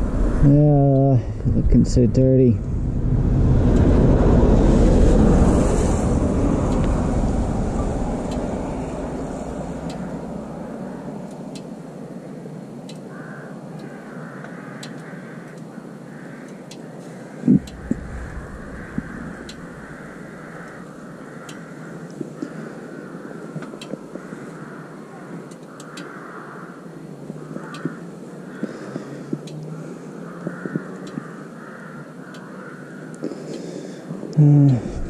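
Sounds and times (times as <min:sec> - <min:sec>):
vehicle passing on road: 0:00.0 - 0:00.8, 0:02.1 - 0:12.0, 0:17.3 - 0:22.2
faint ticks: 0:09.8 - 0:10.1, 0:12.8 - 0:15.7, 0:16.4 - 0:22.6, 0:23.6 - 0:24.4, 0:25.4 - 0:26.6, 0:27.2 - 0:29.7, 0:30.3 - 0:34.0.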